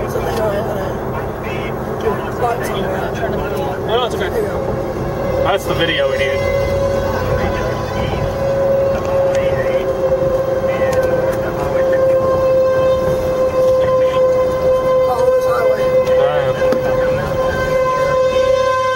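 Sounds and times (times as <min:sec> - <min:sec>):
road rumble: 0:00.0 - 0:18.9
tornado warning siren: 0:00.0 - 0:18.9.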